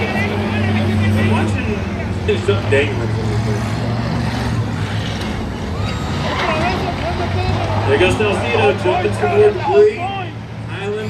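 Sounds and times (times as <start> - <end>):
people talking: 0.0 - 4.0, 6.2 - 11.0
race car engines droning: 0.0 - 11.0.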